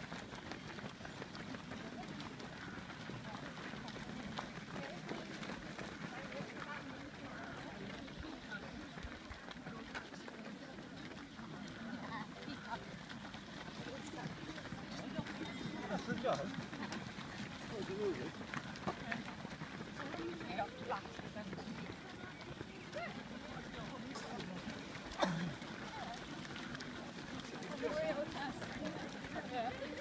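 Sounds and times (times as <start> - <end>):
indistinct chatter: 0.0 - 30.0
runners footsteps on pavement: 0.0 - 30.0.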